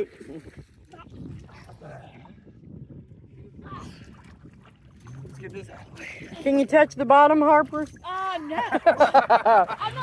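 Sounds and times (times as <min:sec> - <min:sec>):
water splashing and lapping: 0:00.0 - 0:10.0.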